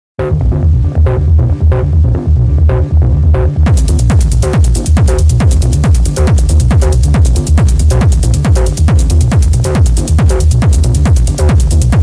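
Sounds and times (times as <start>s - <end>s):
fast hi-hat pattern: 0.2s - 12.0s
throbbing bass: 0.2s - 12.0s.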